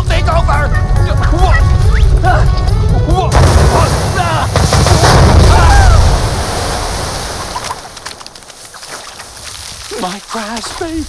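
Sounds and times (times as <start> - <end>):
voice crying out: 5.4 - 6.2.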